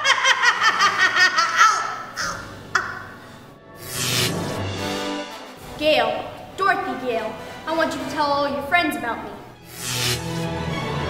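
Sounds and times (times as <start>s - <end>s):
woman cackling: 0.0s - 3.2s
background music: 1.8s - 11.0s.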